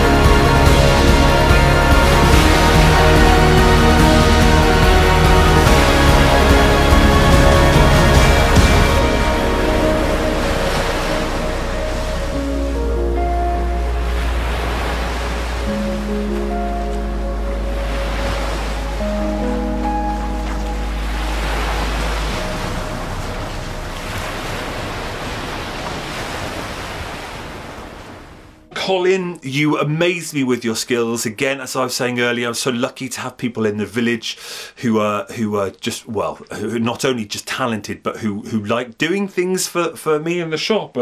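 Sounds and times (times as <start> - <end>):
slow music over low drone: 0.0 - 26.4
sea waves: 0.0 - 28.7.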